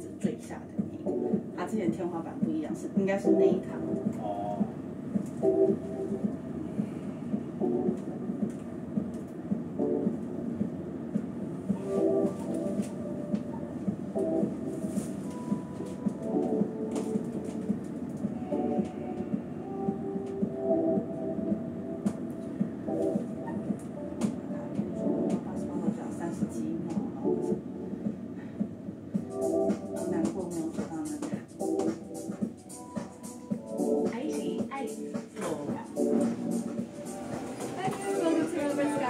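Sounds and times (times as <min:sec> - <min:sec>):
lift low rumble: 0:00.0 - 0:31.1.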